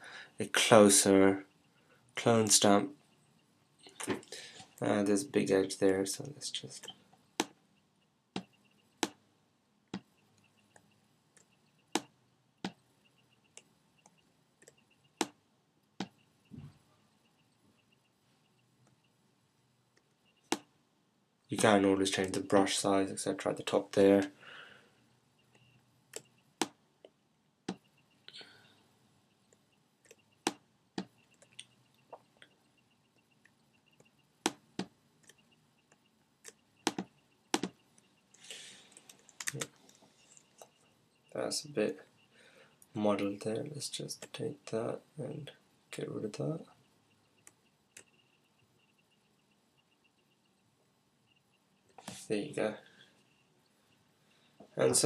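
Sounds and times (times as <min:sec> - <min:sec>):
short breath: 0:00.0 - 0:00.4, 0:04.3 - 0:04.8, 0:24.4 - 0:25.0, 0:38.4 - 0:38.9, 0:42.3 - 0:42.8
computer mouse clicking: 0:13.5 - 0:16.2, 0:25.5 - 0:27.9, 0:33.2 - 0:40.8, 0:47.3 - 0:48.4
mouse and keyboard clicks: 0:25.5 - 0:26.8, 0:33.4 - 0:37.8.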